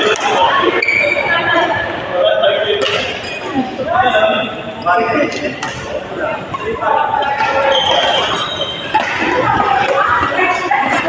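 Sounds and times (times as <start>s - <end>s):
people's voices in hall: 0.0s - 11.0s
squeak-like tone: 7.6s - 8.9s.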